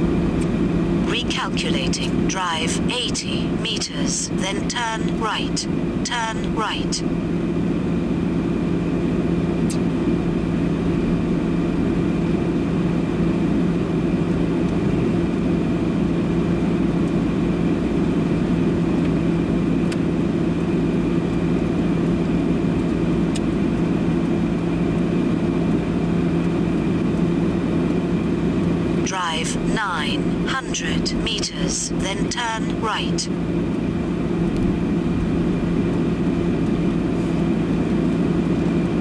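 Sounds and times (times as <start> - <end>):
constant low hum: 0.0 - 39.0.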